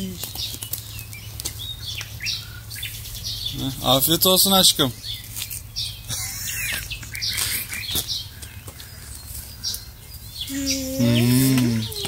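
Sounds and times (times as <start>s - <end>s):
small birds chirping: 0.0s - 12.0s
low-pitched voice-like call: 10.5s - 12.0s.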